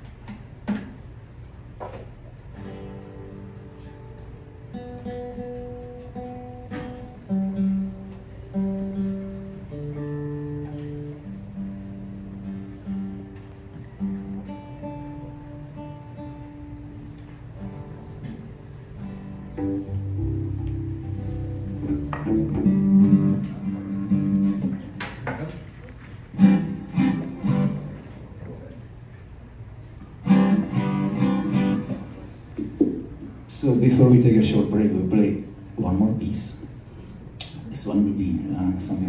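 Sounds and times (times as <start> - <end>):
classical guitar fingerpicking: 2.5 - 25.2, 26.2 - 28.4, 30.0 - 33.3.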